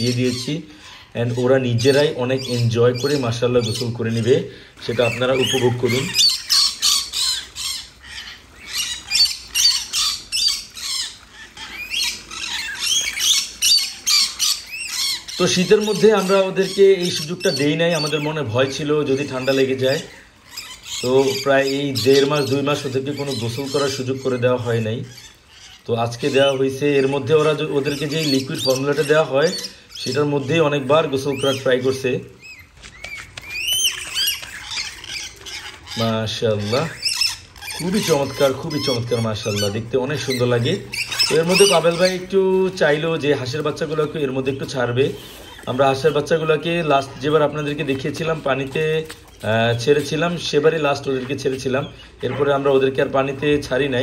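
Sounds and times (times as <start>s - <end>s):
lorikeets screeching: 0.0s - 54.0s
parrots squawking: 0.0s - 54.0s.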